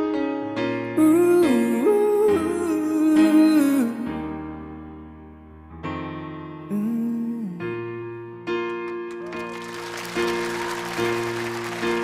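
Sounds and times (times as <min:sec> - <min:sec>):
piano accompaniment: 0:00.0 - 0:12.0
man singing wordless phrase: 0:01.0 - 0:04.2.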